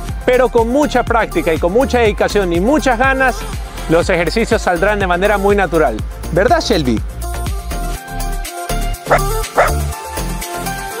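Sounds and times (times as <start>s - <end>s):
dog barking: 9.1s - 9.8s.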